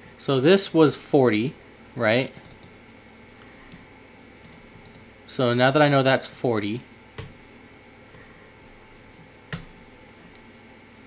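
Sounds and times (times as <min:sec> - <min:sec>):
computer mouse clicks: 0:02.4 - 0:02.8, 0:04.4 - 0:05.1.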